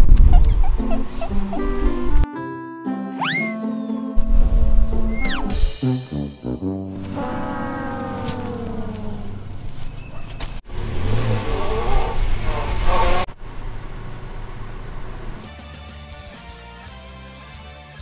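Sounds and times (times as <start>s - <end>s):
background music: 0.9s - 8.2s, 15.4s - 18.0s
falling pitch sound effect: 3.1s - 9.5s
car engine: 6.9s - 15.5s.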